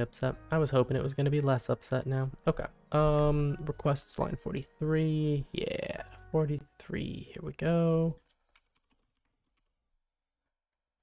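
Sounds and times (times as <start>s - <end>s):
computer keyboard keystrokes: 8.1s - 9.7s.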